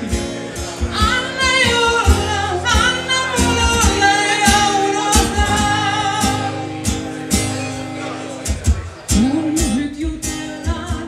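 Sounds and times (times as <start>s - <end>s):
acoustic guitar: 0.0s - 11.0s
woman singing pop: 0.8s - 6.6s, 9.1s - 11.0s.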